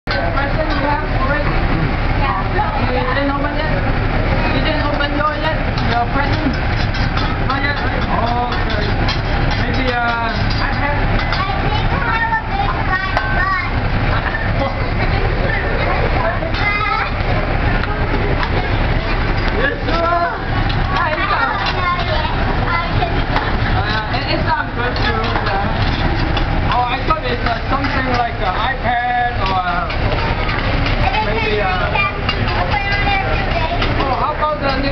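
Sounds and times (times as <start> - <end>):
overlapping voices chattering: 0.1 - 34.9.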